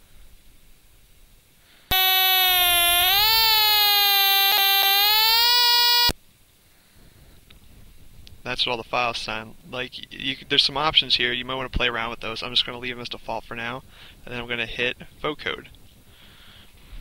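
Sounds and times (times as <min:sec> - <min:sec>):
buzzy electronic note: 0:01.9 - 0:06.1.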